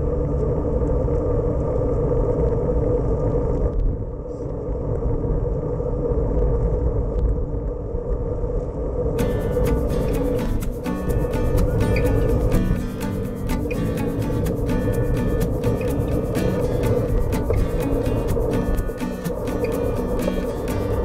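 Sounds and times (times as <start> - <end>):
music: 0.0 - 1.3, 9.2 - 21.0
wind and road noise rumble: 0.0 - 21.0.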